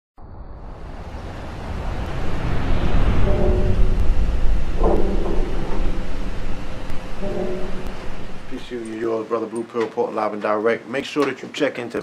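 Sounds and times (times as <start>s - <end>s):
deep rumbling swell: 0.2s - 9.0s
short synth notes: 2.8s - 8.8s.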